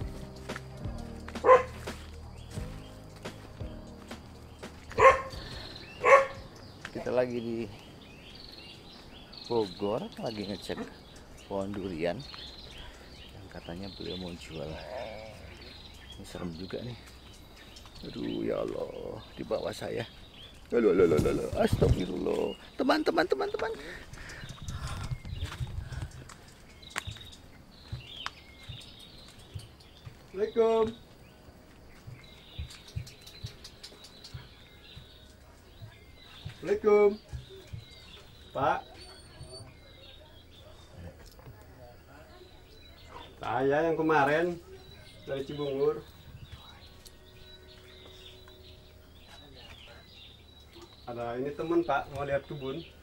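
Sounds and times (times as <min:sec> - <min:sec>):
background music with steady beat: 0:00.0 - 0:06.9, 0:26.1 - 0:38.7
footsteps: 0:00.0 - 0:08.0, 0:15.6 - 0:39.8
dog barking: 0:01.4 - 0:01.8, 0:05.0 - 0:05.4, 0:06.0 - 0:06.4.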